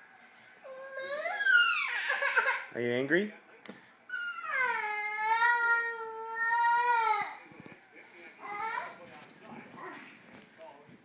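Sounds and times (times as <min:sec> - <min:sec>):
toddler wailing: 0:00.6 - 0:02.6, 0:04.1 - 0:07.4.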